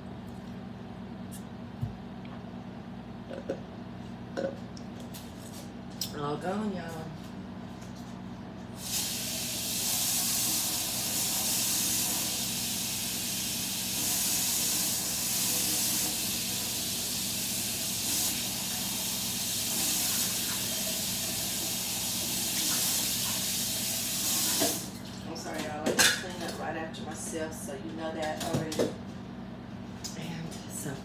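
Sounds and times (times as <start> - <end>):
low steady hum: 0.0 - 11.4
water running from tap: 8.8 - 26.8.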